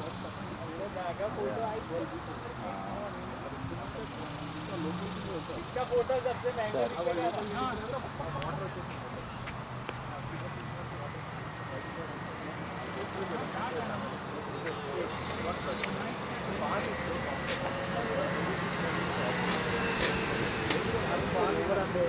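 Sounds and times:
outdoor noise: 0.0s - 22.0s.

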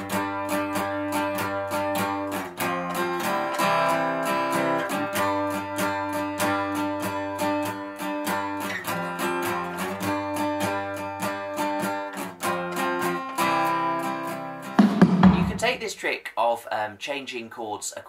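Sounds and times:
acoustic guitar strumming: 0.0s - 15.9s.

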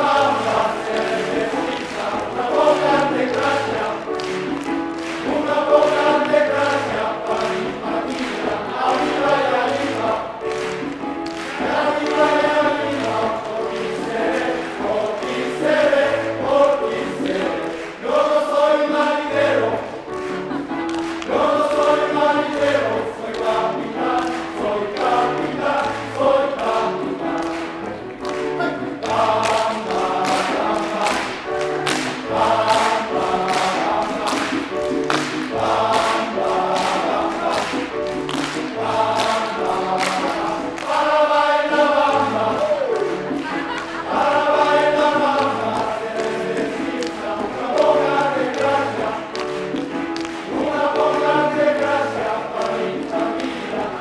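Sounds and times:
men's choir singing: 0.0s - 54.0s
piano accompaniment: 0.0s - 54.0s.

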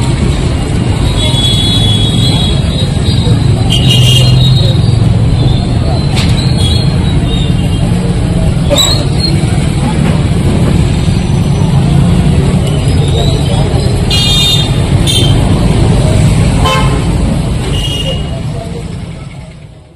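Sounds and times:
roadside traffic rumble: 0.0s - 19.9s
vehicle horn toots: 3.7s - 4.4s, 16.6s - 17.1s.

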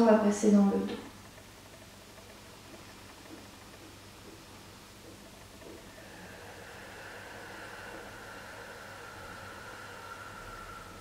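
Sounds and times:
slow breathing hiss: 2.1s - 11.0s.

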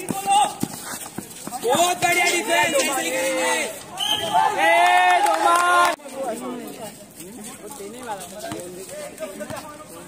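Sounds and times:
players shouting: 0.0s - 0.8s, 1.5s - 6.0s
basketball bouncing on concrete: 0.0s - 2.3s.

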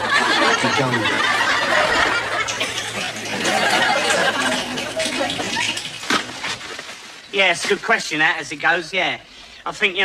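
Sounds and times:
studio audience laughter: 0.0s - 5.9s.

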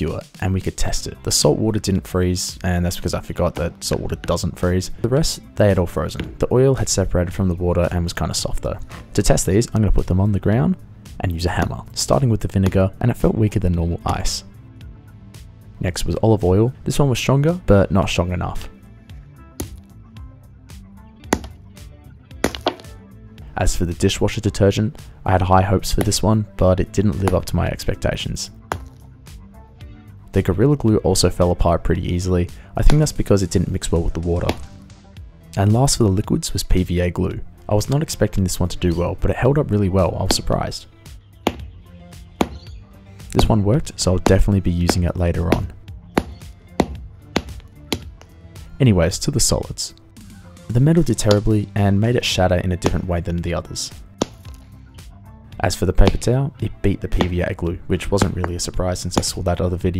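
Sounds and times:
background music: 0.0s - 59.9s
hammer striking ice on concrete: 22.4s - 22.9s, 44.9s - 48.3s, 54.2s - 54.6s.

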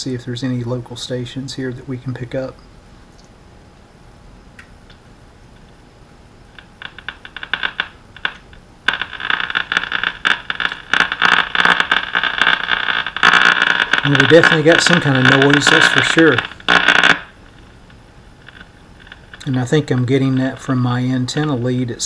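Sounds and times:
radio speaker crackling and buzzing: 4.9s - 22.0s.

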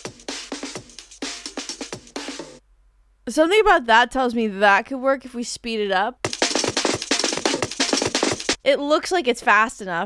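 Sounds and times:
drum break loop: 0.0s - 2.6s, 6.2s - 8.6s.

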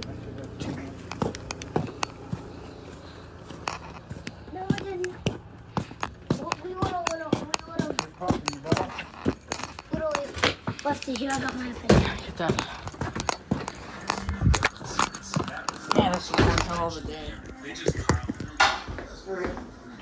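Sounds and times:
indistinct voices: 0.0s - 20.0s
footsteps on concrete: 0.4s - 20.0s.

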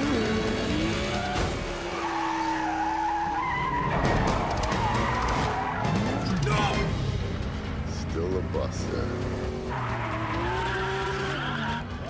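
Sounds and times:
racing car engines running hard: 0.0s - 12.0s.

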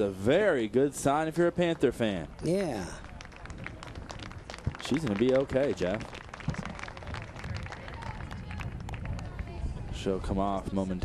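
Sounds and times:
wind rumble on microphone: 3.1s - 11.0s.

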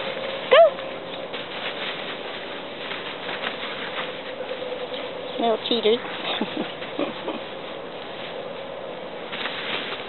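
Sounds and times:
paws scampering on grass: 0.0s - 10.0s.

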